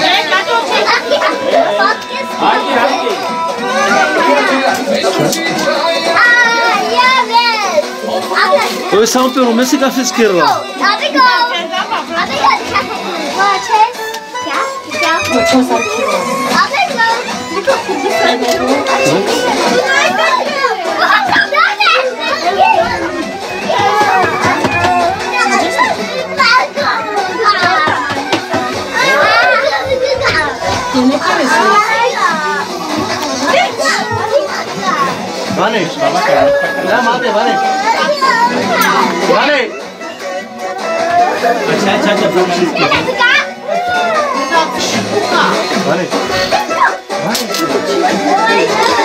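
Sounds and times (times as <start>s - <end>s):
adults talking: 0.0s - 49.0s
children's voices: 0.0s - 49.0s
party chatter: 0.0s - 49.0s.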